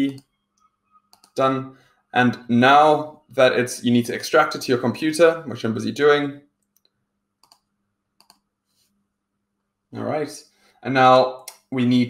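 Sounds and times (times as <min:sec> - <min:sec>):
computer mouse clicks: 0:01.1 - 0:01.4, 0:06.6 - 0:08.5.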